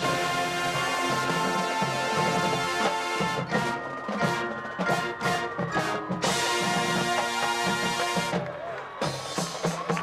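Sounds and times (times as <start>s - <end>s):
marching band playing: 0.0s - 10.0s.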